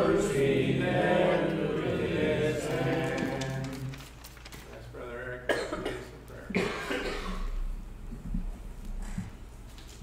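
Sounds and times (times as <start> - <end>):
person coughing: 5.5 - 7.6.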